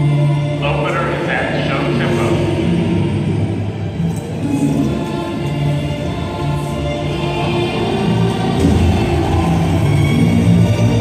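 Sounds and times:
marching band sustained chords: 0.0s - 11.0s.

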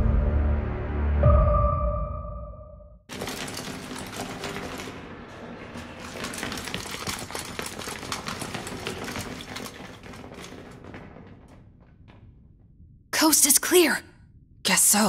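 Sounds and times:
armoured soldiers marching footsteps: 3.1s - 12.6s.

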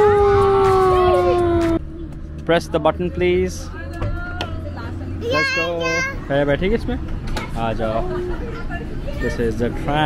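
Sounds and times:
tram rumble: 0.0s - 10.0s.

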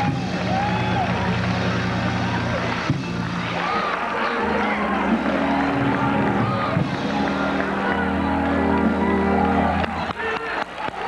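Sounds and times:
gospel music sustained low chord: 4.3s - 10.1s.

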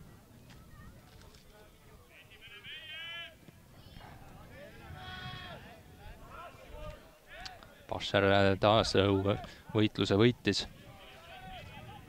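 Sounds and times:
players shouting and calling: 0.6s - 12.0s.

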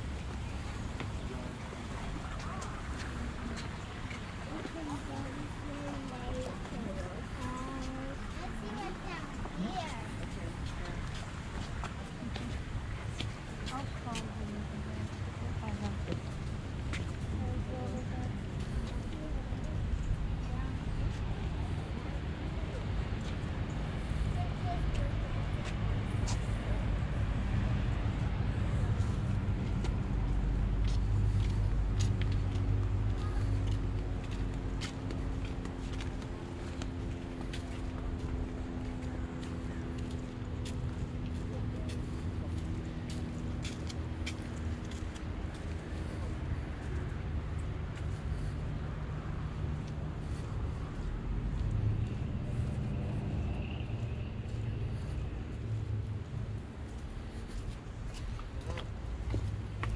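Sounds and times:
footsteps on paved path: 0.0s - 59.9s
passing road traffic: 0.0s - 59.9s.

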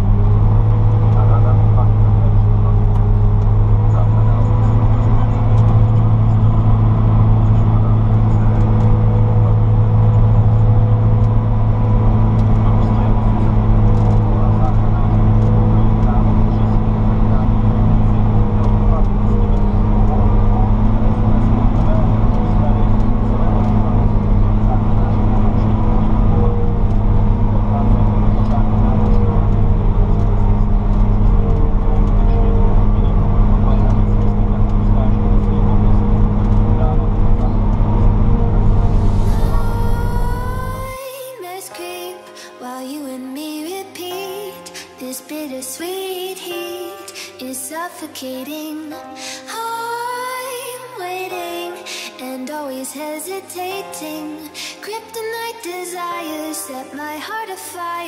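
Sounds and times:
harvester engine humming: 0.0s - 41.0s.

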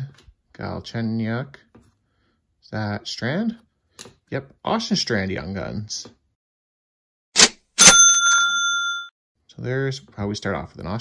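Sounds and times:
cash register ka-ching: 7.4s - 9.1s.

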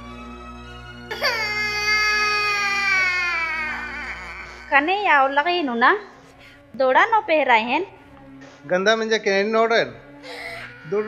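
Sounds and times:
toddler crying: 1.1s - 5.6s.

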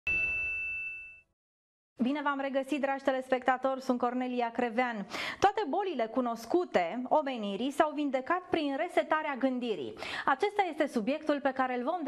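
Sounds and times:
bell-like chime: 0.1s - 1.3s.

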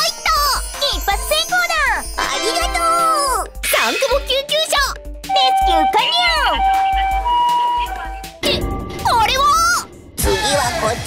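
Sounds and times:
toy two-tone siren: 5.3s - 8.3s.

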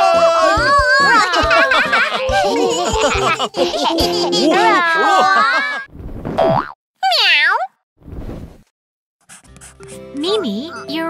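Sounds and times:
bouncy cartoon music: 0.0s - 5.4s, 9.3s - 11.0s
cartoon character voices: 7.0s - 7.7s
brief swish: 8.0s - 8.7s.

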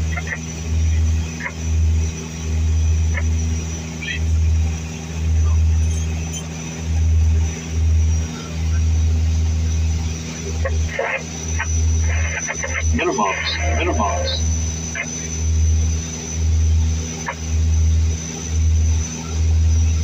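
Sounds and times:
turboprop engine drone: 0.0s - 20.0s.

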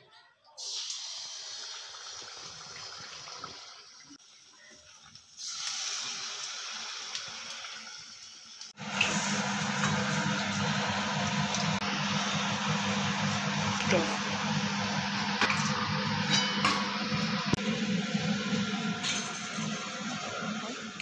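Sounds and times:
batter deep-frying in hot oil: 0.6s - 21.0s.

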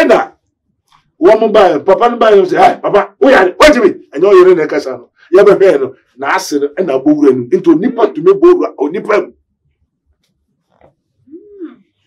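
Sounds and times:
man speaking: 0.0s - 0.4s, 1.2s - 9.3s.

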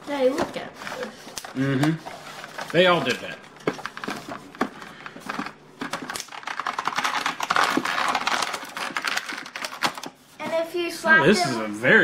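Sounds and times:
packaging crinkling and clicking: 0.4s - 10.2s.

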